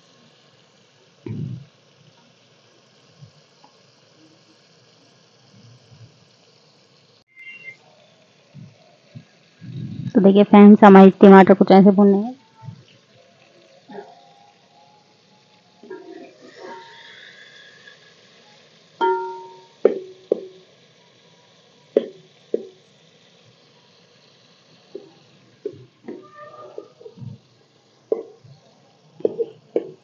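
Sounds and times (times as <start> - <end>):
tomatoes frying: 0.0 - 30.0.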